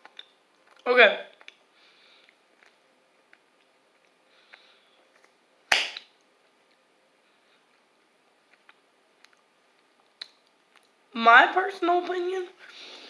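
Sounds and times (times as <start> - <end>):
mouth smack while chewing: 8.5 - 10.9.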